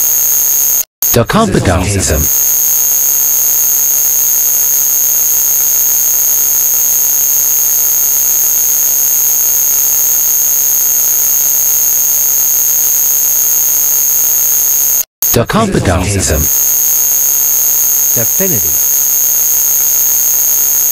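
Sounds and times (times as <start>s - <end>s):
harsh electronic hiss: 15.8s - 20.9s.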